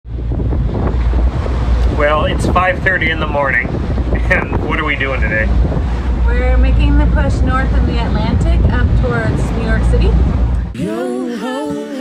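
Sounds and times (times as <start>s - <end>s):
steady low rumble: 0.0s - 10.9s
wind buffeting microphone: 0.1s - 10.8s.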